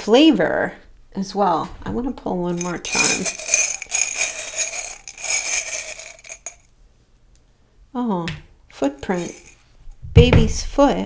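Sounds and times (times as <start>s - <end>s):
metal charms rattling in a mug: 2.5s - 6.6s, 9.0s - 9.7s.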